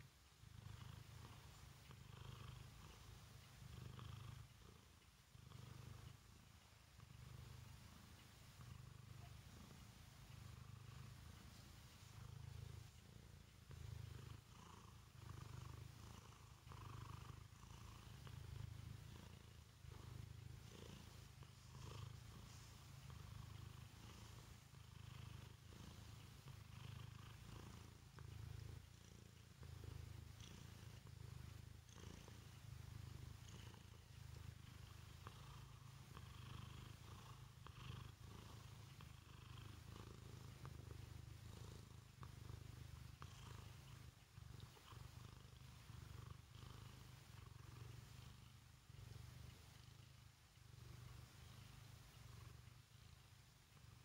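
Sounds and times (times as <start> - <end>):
cat purring: 0.0 - 54.0.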